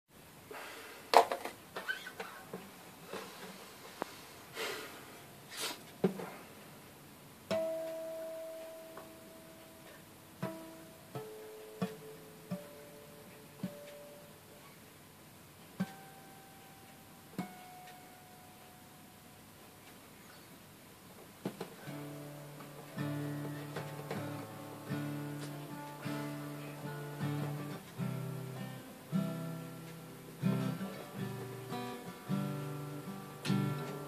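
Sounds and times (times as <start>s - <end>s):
acoustic guitar picked slowly: 1.8s - 20.6s, 21.3s - 34.0s.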